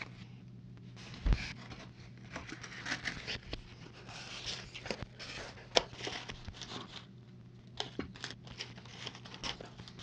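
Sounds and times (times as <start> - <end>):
packing material rustling: 1.2 - 7.1, 7.8 - 10.0.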